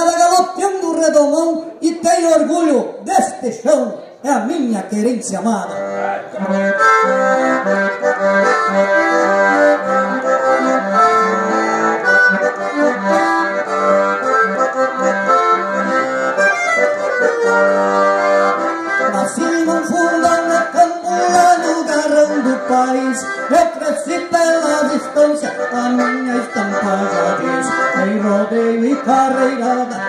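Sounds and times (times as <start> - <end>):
button accordion melody: 5.6 - 30.0.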